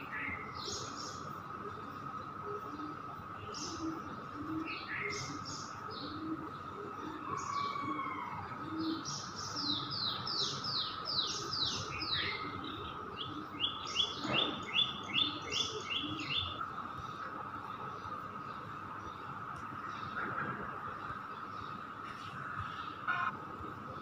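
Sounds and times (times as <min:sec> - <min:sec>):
songbird chirping: 0:00.0 - 0:24.0.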